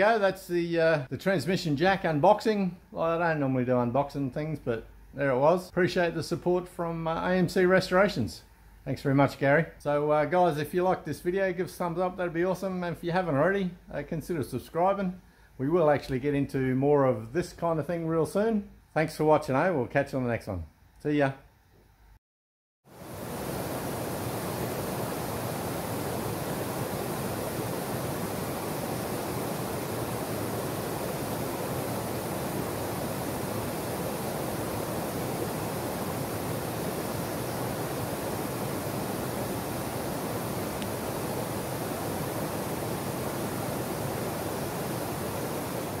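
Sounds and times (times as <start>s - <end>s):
waterfalls rushing into creek: 22.9s - 46.0s.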